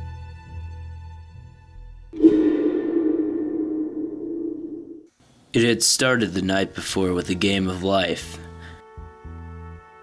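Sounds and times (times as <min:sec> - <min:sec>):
low ringing soundtrack hit: 0:02.2 - 0:05.1.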